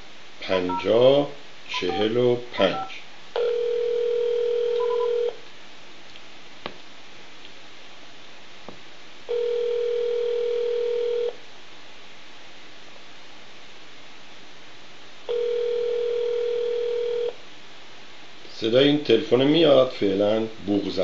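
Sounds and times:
telephone ringback tone: 1.9s - 5.4s, 9.3s - 11.4s, 15.3s - 17.4s.

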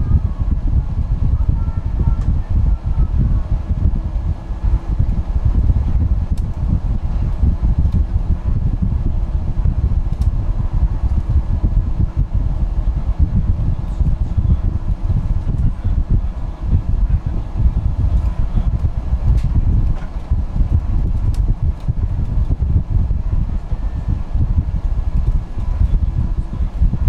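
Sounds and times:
faint steady whine: 0.0s - 27.0s
bus engine and tyres rumbling: 0.2s - 27.0s.

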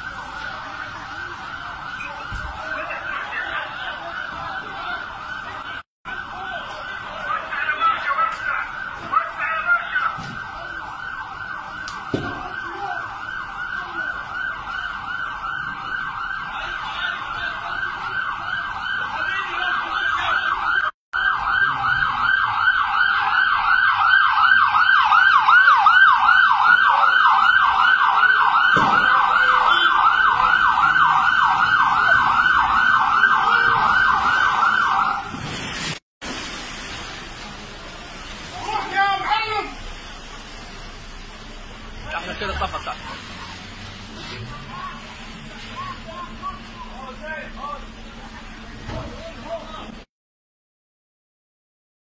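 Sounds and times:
emergency siren yelp: 0.0s - 35.6s.

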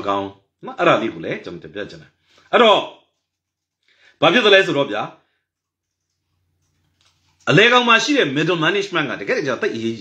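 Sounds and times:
man speaking: 0.0s - 3.1s, 4.2s - 5.3s, 7.4s - 10.0s.

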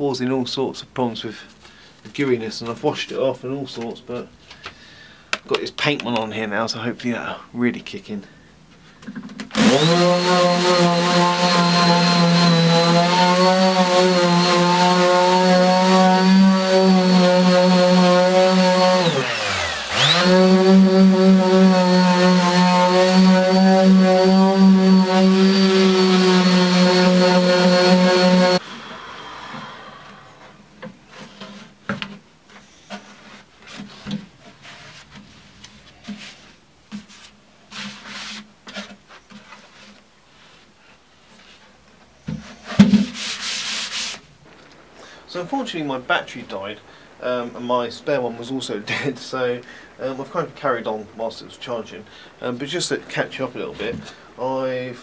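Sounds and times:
knocks and handling sounds: 8.7s - 9.6s, 30.7s - 40.7s, 41.3s - 43.4s
electric sander motor whine: 9.6s - 30.6s.

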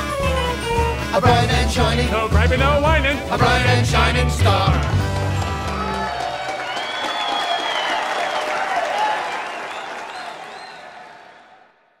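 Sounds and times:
music: 0.0s - 7.0s
applause and cheering: 4.6s - 12.0s
high whoops: 5.7s - 10.8s.

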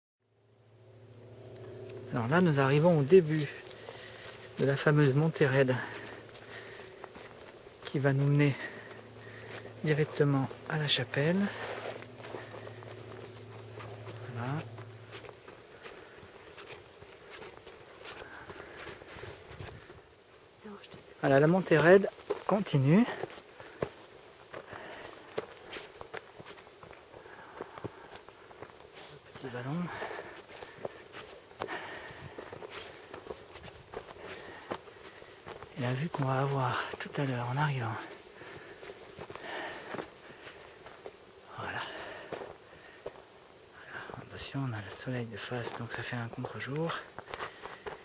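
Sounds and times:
steady low hum: 0.3s - 48.0s
footsteps crunching on stony trail: 1.3s - 48.0s.

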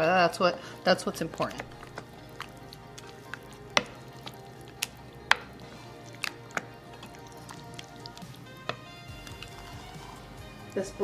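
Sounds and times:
wooden spoon stirring guacamole: 0.0s - 11.0s.

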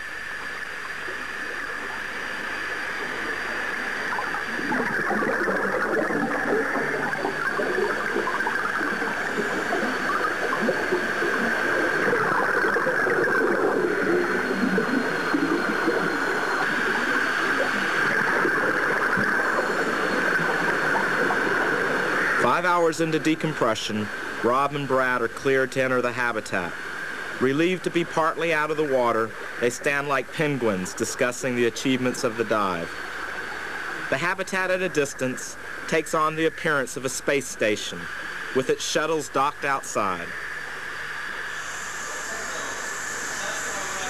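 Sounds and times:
underwater bubbling and gurgling: 0.0s - 38.7s
steady hiss: 0.0s - 44.0s.

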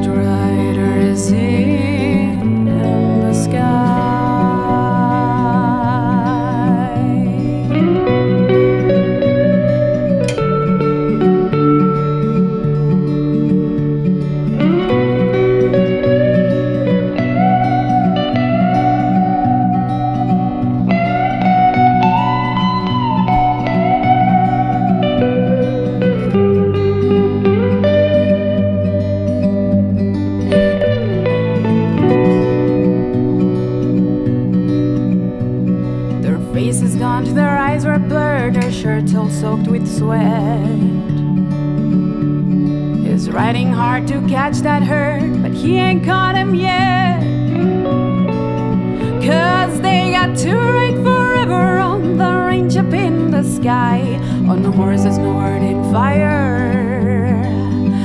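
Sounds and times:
electric guitar lead solo: 0.0s - 58.0s
strummed acoustic guitar: 0.0s - 58.0s.

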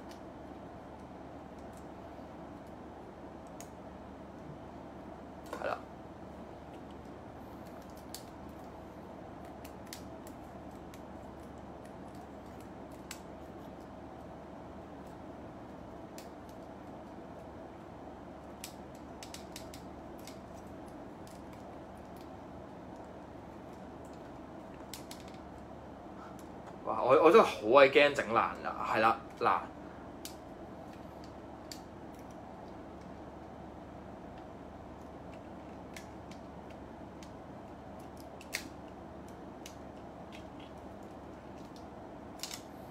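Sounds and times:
low background hum: 0.0s - 42.9s
light clicks of figure parts: 18.5s - 22.3s, 34.3s - 42.7s.

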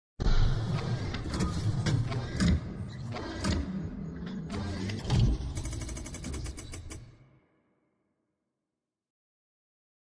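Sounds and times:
quick mechanical clicks: 4.5s - 7.2s.

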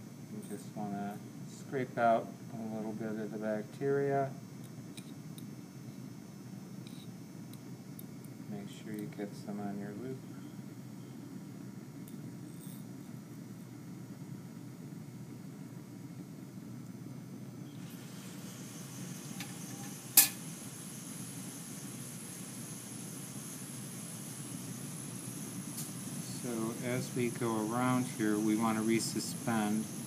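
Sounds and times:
bunsen burner flame rushing: 17.6s - 30.0s.

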